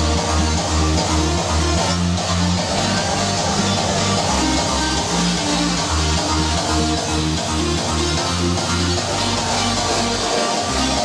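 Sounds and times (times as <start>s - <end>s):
hardstyle dance music: 0.0s - 11.0s.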